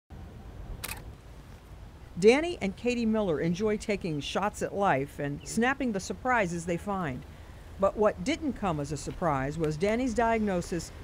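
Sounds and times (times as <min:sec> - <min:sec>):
camera shutter click: 0:00.8 - 0:01.1.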